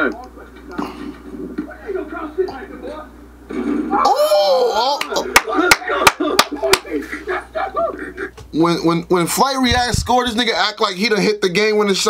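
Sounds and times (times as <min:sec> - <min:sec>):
men talking: 0:00.0 - 0:03.2, 0:04.6 - 0:12.0.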